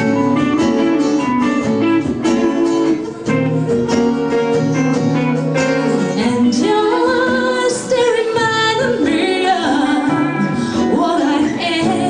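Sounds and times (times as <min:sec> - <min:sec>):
acoustic and electric guitars: 0:00.0 - 0:12.0
congas: 0:00.0 - 0:12.0.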